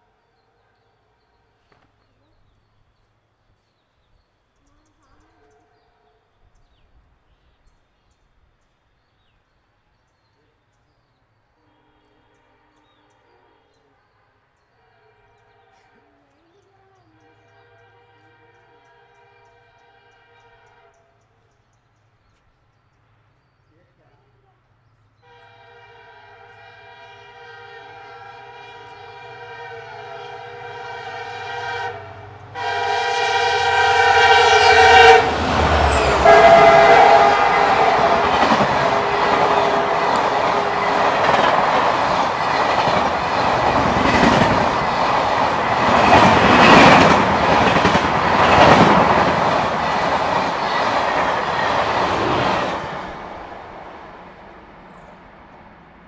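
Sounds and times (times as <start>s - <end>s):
locomotive horn blasts: 17.2s - 21.0s, 25.2s - 41.4s
train coaches rushing and clattering: 27.2s - 56.0s.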